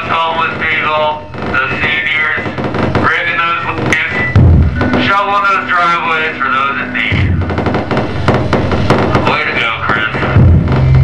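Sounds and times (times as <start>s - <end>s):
low rumble: 0.0s - 11.0s
steady low hum: 0.0s - 11.0s
warbling synthesizer tones: 0.0s - 11.0s.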